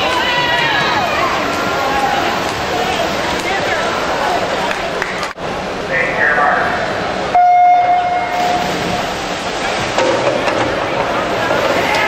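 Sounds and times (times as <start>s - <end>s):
echoing pool hall noise: 0.0s - 12.0s.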